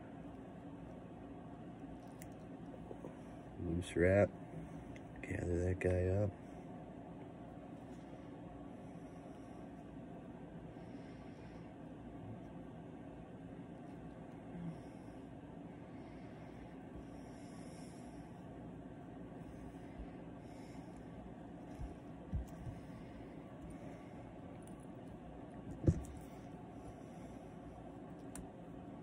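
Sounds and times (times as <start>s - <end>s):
soft breaths through nose: 7.8s - 12.5s, 13.8s - 24.7s.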